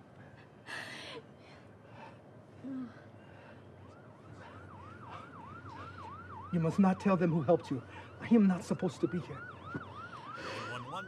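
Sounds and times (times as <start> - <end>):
emergency siren yelping: 3.8 - 11.0.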